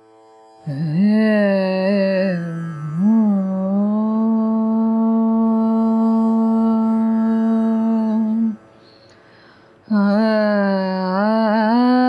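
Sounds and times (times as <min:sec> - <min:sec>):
woman singing classical style: 0:00.7 - 0:08.7, 0:09.9 - 0:12.0.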